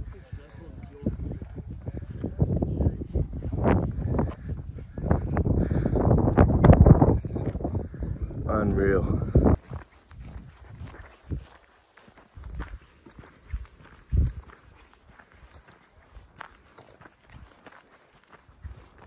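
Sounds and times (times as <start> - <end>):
footsteps on dirt trail: 0.0 - 19.0.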